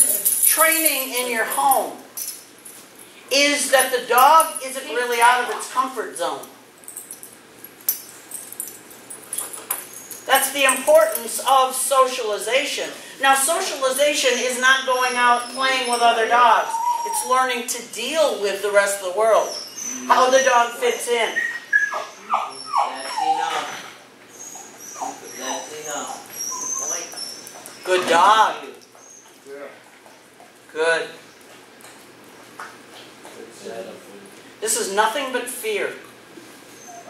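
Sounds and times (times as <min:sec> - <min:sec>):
dog whimpering faintly: 0:15.4 - 0:17.4, 0:19.4 - 0:28.1, 0:36.7 - 0:37.0.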